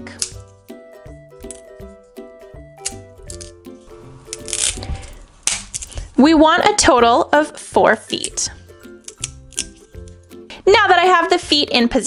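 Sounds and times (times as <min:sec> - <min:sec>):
wooden stick snapping: 0:00.0 - 0:00.5, 0:01.4 - 0:01.8, 0:02.8 - 0:03.6, 0:04.3 - 0:06.0, 0:09.0 - 0:10.2.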